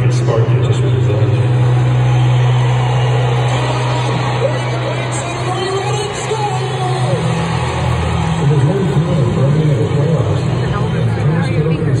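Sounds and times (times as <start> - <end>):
loud steady low drone: 0.0 - 12.0.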